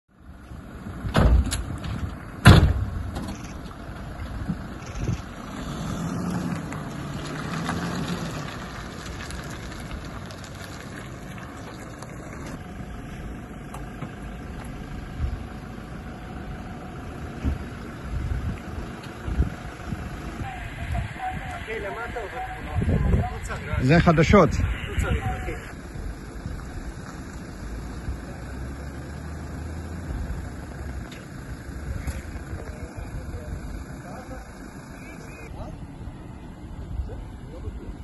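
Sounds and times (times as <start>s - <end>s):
vehicle engine revving: 0.7s - 35.8s
metal door slams: 1.1s - 3.3s.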